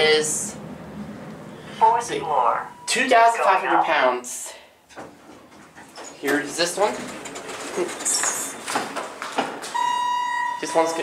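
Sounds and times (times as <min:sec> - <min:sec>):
elevator arrival chime beep: 0:02.6 - 0:03.6, 0:09.7 - 0:11.0.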